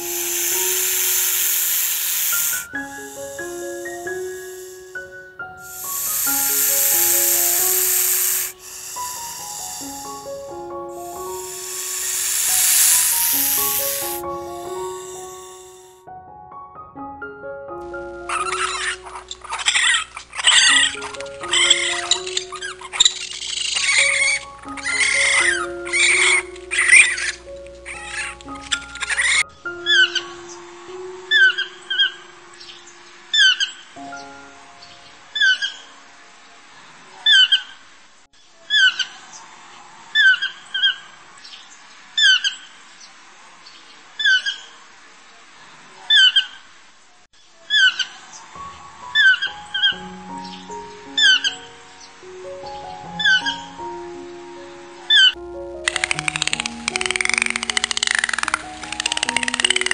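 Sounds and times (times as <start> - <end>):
toucan croaking calls: 0.0 - 15.9, 18.3 - 30.6, 49.2 - 53.9, 55.1 - 59.9
background music sustained notes: 0.0 - 37.0, 48.6 - 59.9
raccoon chittering and churring: 0.1 - 4.0, 5.7 - 10.3, 11.1 - 15.0, 18.4 - 30.0, 55.2 - 59.9.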